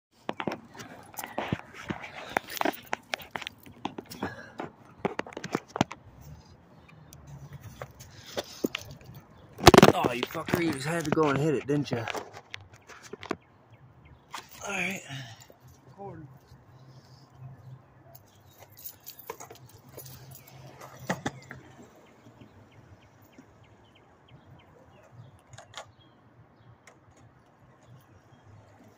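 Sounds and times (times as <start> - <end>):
footsteps on concrete: 0.2 - 9.0
phone handling noise: 7.7 - 13.4.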